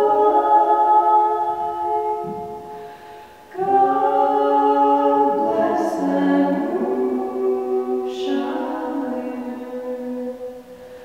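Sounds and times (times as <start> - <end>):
man and woman singing: 0.0 - 2.5, 3.5 - 10.5.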